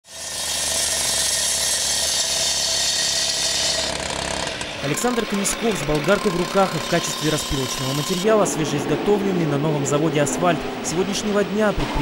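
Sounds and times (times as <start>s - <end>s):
cut-off saw grinding asphalt: 0.0s - 11.4s
saw engine running: 0.0s - 12.0s.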